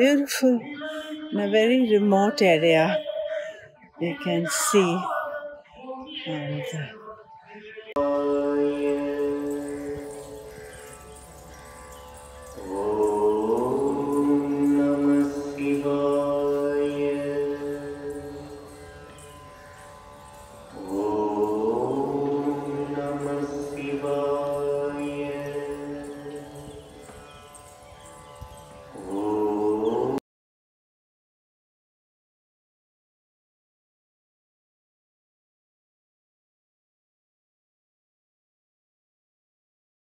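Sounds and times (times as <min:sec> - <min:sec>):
devotional chanting: 0:00.0 - 0:30.2.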